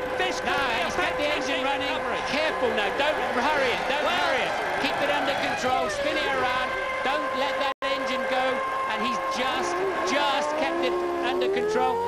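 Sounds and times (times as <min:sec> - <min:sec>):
race car engine at high revs: 0:08.2 - 0:12.0.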